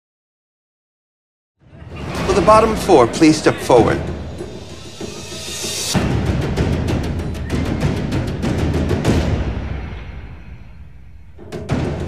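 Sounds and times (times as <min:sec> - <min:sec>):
dramatic suspense music: 0:01.8 - 0:12.0.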